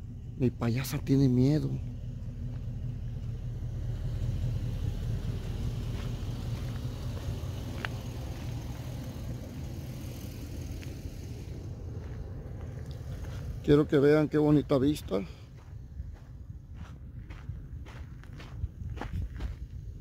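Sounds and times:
truck engine and road rumble: 0.0 - 20.0.

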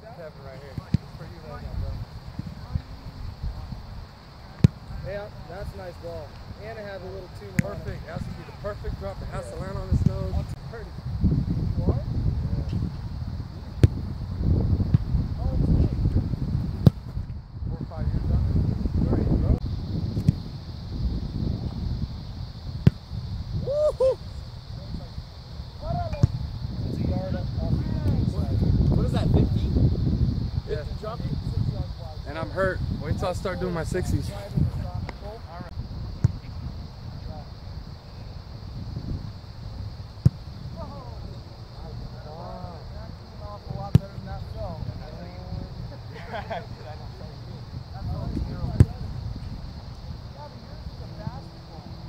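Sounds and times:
wind on microphone: 0.8 - 4.2, 4.8 - 52.0
ball being kicked: 13.8 - 14.1, 26.1 - 26.4, 48.3 - 49.0
foot kicking ball: 13.8 - 14.1.

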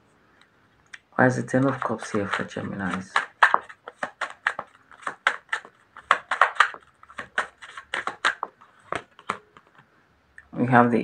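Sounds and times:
cards being shuffled by hand: 1.0 - 9.8.

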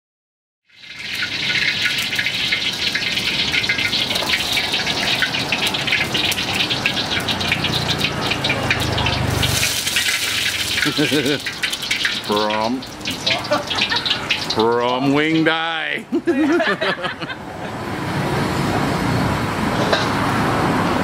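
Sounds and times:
hot oil crackling: 0.7 - 17.3
gas burner hissing: 9.0 - 15.4.

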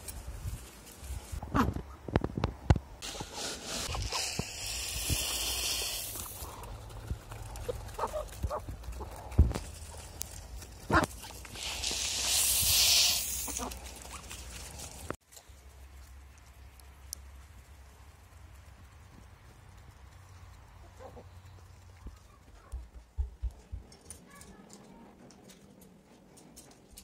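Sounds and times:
scoop digging into grain: 3.0 - 6.4, 11.3 - 13.8
grain hissing: 3.0 - 7.6, 9.6 - 15.2
chickens feeding: 3.1 - 16.1, 17.4 - 22.5.

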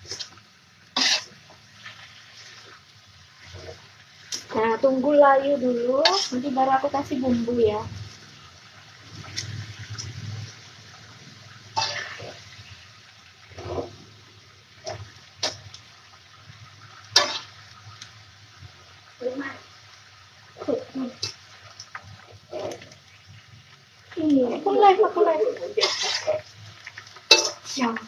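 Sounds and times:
metal spatula scraping a wok: 0.0 - 0.4, 1.0 - 2.8, 3.4 - 4.9, 6.0 - 7.4, 11.7 - 12.7, 13.5 - 14.0, 17.1 - 17.6, 22.3 - 23.0, 25.7 - 28.0
pan sizzling: 0.0 - 28.0.

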